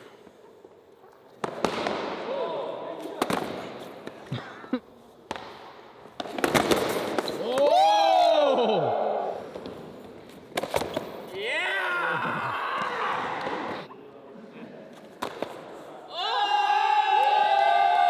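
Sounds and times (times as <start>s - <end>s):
boards slapping concrete floor: 6.2s - 7.8s.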